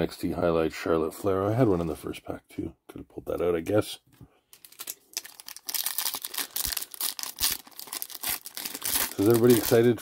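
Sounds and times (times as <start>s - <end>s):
plastic wrapper crinkling and tearing: 4.5s - 10.0s.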